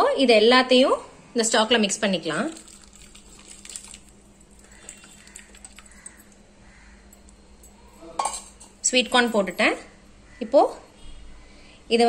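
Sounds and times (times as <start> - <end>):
corn kernels clinking in steel bowl: 2.4 - 6.4.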